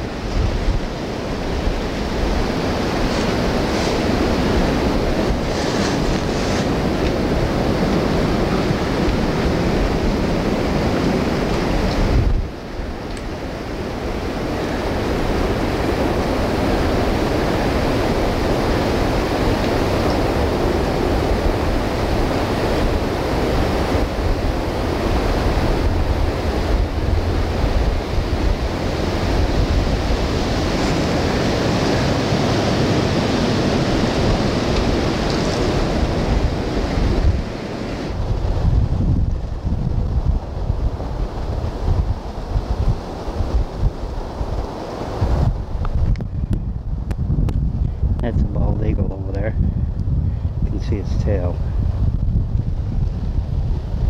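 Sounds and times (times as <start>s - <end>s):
wind buffeting microphone: 0.0s - 54.0s
wind rushing through treetops: 0.0s - 54.0s.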